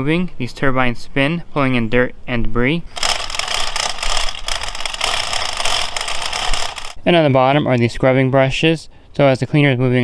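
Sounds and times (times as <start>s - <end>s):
plastic wheels ratcheting clatter: 3.0s - 7.0s.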